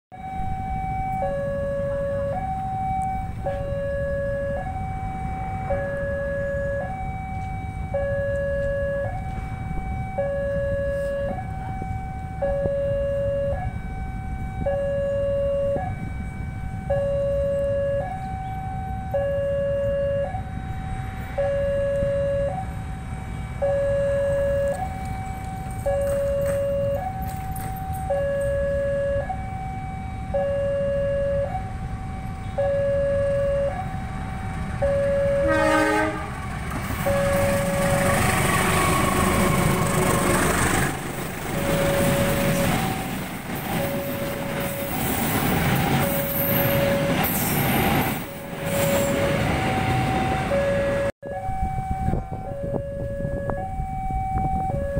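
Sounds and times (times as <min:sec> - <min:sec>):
train wagons rumbling past: 0:00.1 - 0:19.2, 0:19.8 - 0:30.3, 0:31.5 - 0:53.9
two-tone level crossing alarm: 0:00.1 - 0:36.2, 0:36.8 - 0:40.7, 0:41.5 - 0:54.9
locomotive horn: 0:05.4 - 0:27.3, 0:34.8 - 0:53.6.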